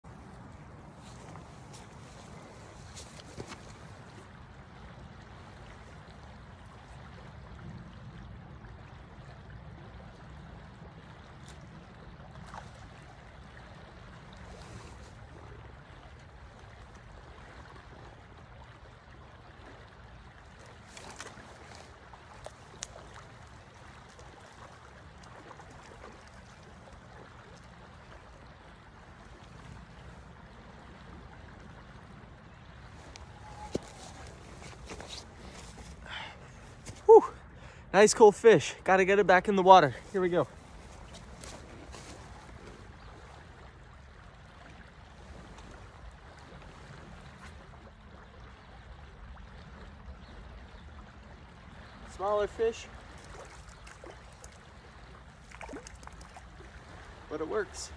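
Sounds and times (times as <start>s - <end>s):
stream flowing over stones: 0.0s - 48.0s, 51.8s - 57.9s.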